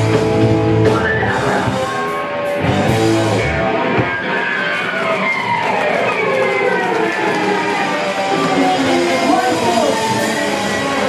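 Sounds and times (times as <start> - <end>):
electric guitar sliding down: 0.0 - 11.0.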